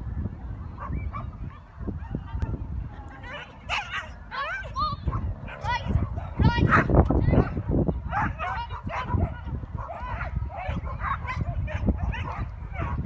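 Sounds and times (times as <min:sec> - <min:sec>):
dog barking in high yips: 0:03.3 - 0:13.0.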